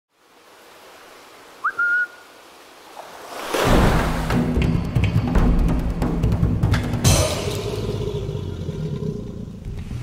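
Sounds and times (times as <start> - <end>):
faint steady hiss: 0.1 - 3.6
short sliding whistle: 1.6 - 2.2
drum-heavy intro music: 4.1 - 7.9.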